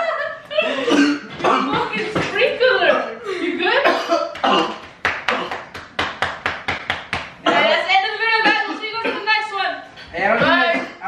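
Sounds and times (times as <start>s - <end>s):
man coughing: 0.6s - 2.0s, 3.8s - 5.7s, 10.5s - 11.0s.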